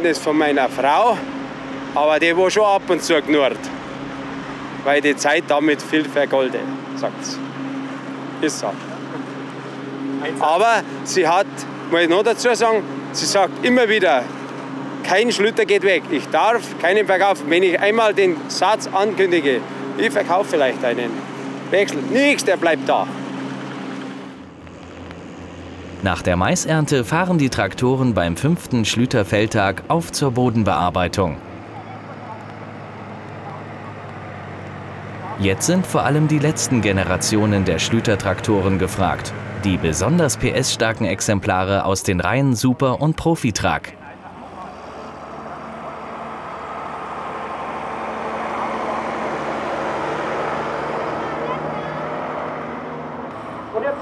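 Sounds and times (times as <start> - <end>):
tractor diesel engine droning: 0.0 - 54.0.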